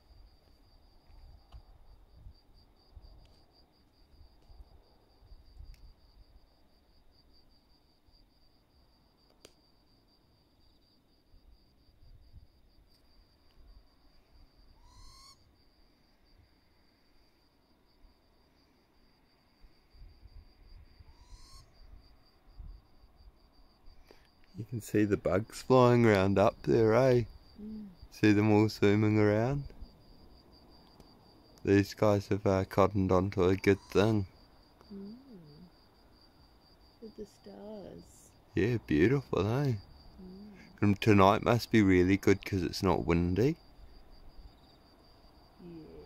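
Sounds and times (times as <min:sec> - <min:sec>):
owl calling: 0:14.8 - 0:15.4, 0:21.1 - 0:21.8, 0:33.7 - 0:34.2.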